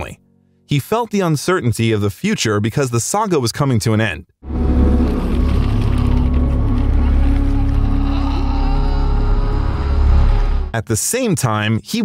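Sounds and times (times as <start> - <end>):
heavy low rumble: 4.4 - 10.8
sustained low music tones: 4.4 - 10.8.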